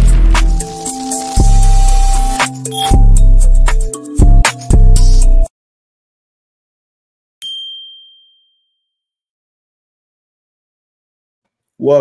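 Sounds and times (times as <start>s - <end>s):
bell-like ding: 7.4s - 9.1s.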